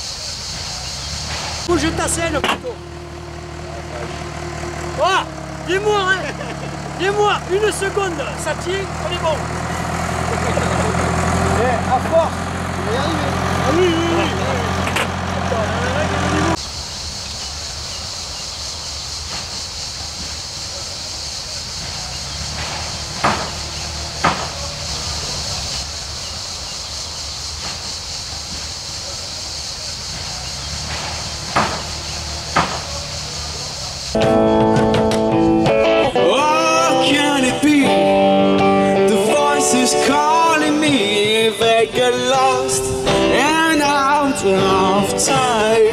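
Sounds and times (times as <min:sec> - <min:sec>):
steady hiss: 0:00.0 - 0:01.8, 0:16.6 - 0:34.2
truck engine idling: 0:00.0 - 0:45.9
people talking: 0:01.6 - 0:02.8, 0:03.5 - 0:09.5, 0:10.2 - 0:16.6, 0:20.6 - 0:22.3, 0:24.1 - 0:25.8, 0:29.0 - 0:30.7, 0:32.3 - 0:34.1, 0:39.0 - 0:45.9
sharp knocks: 0:22.5 - 0:24.6, 0:30.8 - 0:33.0.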